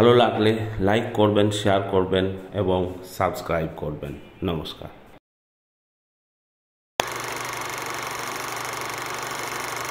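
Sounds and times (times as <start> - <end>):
fast mechanical rattle: 7.0 - 9.9.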